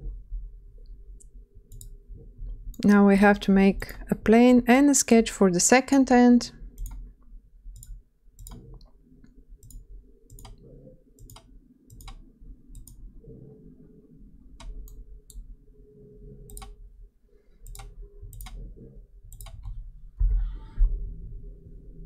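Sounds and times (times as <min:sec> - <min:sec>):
faint low hum: 0:00.0 - 0:22.0
computer mouse clicks: 0:01.2 - 0:02.0, 0:06.8 - 0:07.1, 0:07.7 - 0:10.6, 0:11.2 - 0:13.0, 0:14.6 - 0:15.5, 0:16.4 - 0:16.8, 0:17.6 - 0:18.6, 0:19.3 - 0:19.8.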